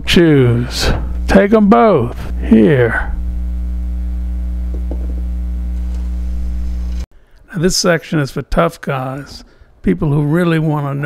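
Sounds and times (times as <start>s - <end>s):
electrical mains hum: 0.0s - 7.6s.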